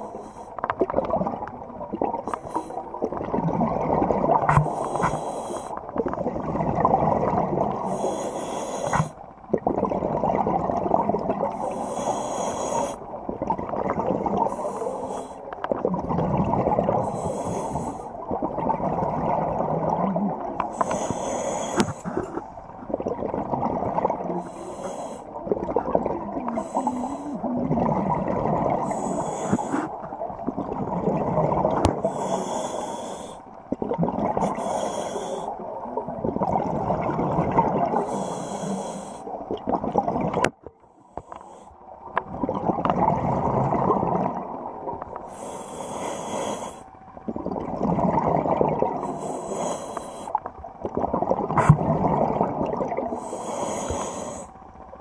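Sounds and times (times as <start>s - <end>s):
exhaled bubbles rumbling: 0.0s - 8.1s, 8.9s - 11.8s, 13.0s - 32.3s, 33.6s - 34.6s, 35.6s - 38.4s, 39.3s - 40.8s, 41.9s - 45.3s, 47.1s - 49.7s, 50.4s - 54.1s
regulator inhalation hiss: 4.7s - 5.8s, 7.8s - 9.2s, 11.6s - 13.0s, 14.5s - 15.5s, 17.0s - 18.2s, 20.7s - 22.2s, 24.4s - 25.3s, 28.8s - 30.0s, 32.1s - 33.5s, 34.5s - 35.6s, 38.0s - 39.4s, 45.3s - 46.9s, 49.0s - 50.4s, 53.2s - 54.6s.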